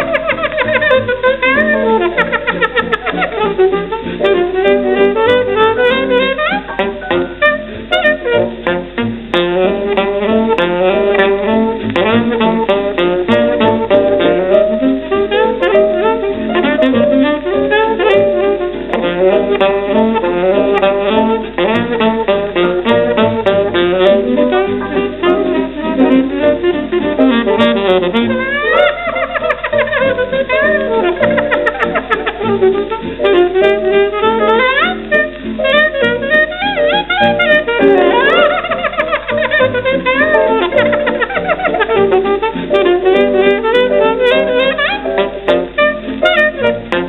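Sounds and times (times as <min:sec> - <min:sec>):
piano accompaniment: 0:00.0 - 0:47.0
saxophone playing fast runs: 0:00.0 - 0:47.0.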